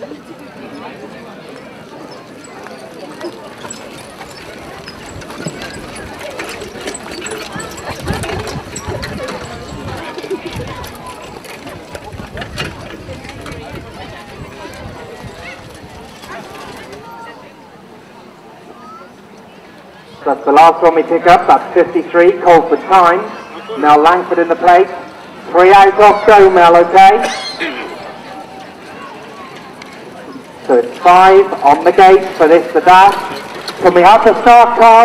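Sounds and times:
people talking: 0.0s - 35.0s.

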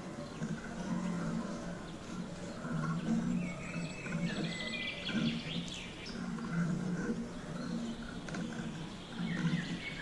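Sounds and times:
sparrows chirping: 0.0s - 10.0s.

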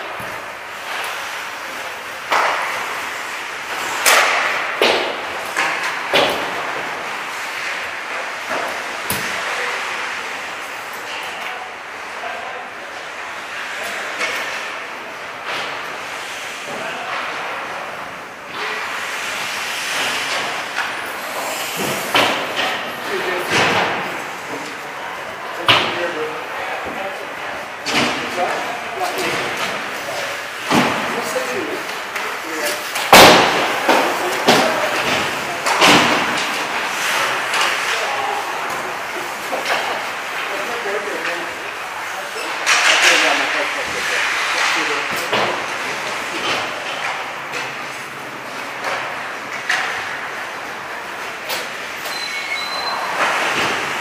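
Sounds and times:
sticks and pucks clacking: 0.0s - 9.6s, 18.5s - 24.9s, 27.8s - 41.8s, 42.5s - 52.2s
skates scraping ice: 0.0s - 11.1s, 13.0s - 25.3s, 25.9s - 54.0s.

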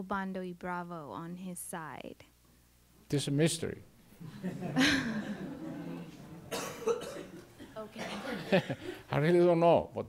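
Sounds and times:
people chuckling: 4.2s - 9.0s.

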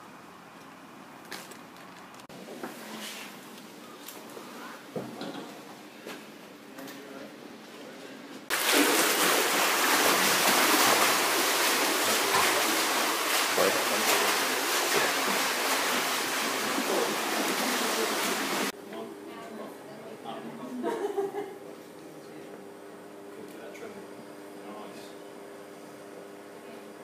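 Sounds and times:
swimmers splashing water: 8.5s - 18.8s.

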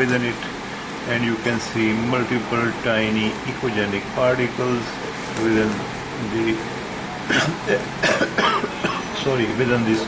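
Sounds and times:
man coughing: 7.3s - 9.2s.

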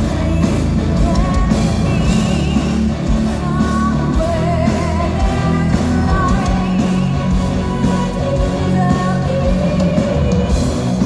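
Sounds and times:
metal band playing: 0.0s - 11.0s
woman singing with vibrato: 0.0s - 11.0s.

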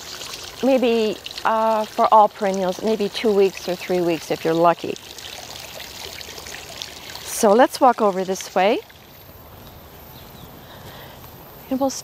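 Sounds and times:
fountain trickling and splashing: 0.0s - 12.0s.

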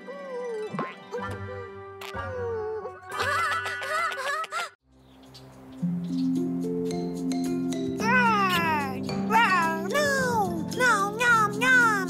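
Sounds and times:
background music: 0.0s - 12.0s
cartoon baby voice calling: 8.0s - 12.0s.

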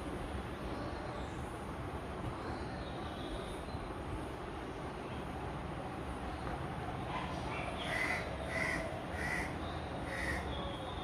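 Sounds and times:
bird calling: 7.5s - 10.7s.

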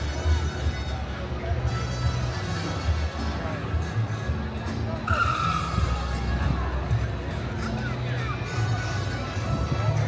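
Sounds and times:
background music: 0.0s - 10.0s
high-pitched screech: 5.1s - 6.2s.

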